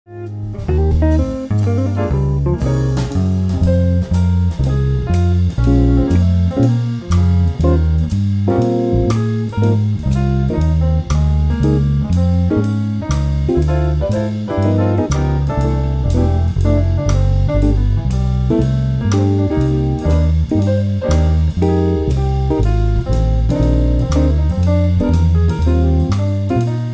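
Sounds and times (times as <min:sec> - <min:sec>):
electric bass walking line: 0:00.1 - 0:26.9
drums: 0:00.3 - 0:26.9.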